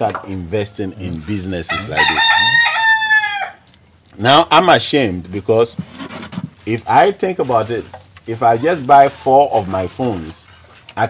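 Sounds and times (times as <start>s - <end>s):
rooster crowing: 1.7s - 3.6s.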